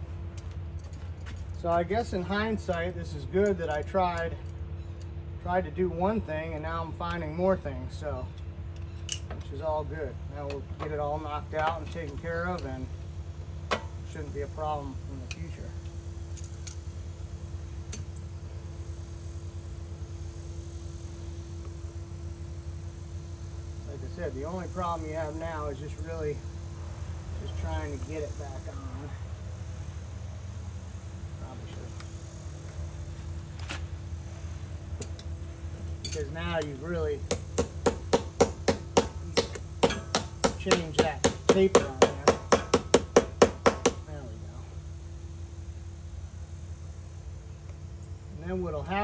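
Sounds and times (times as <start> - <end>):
steady low hum: 0.0 - 49.0
light metallic clicks of tool: 15.2 - 16.9.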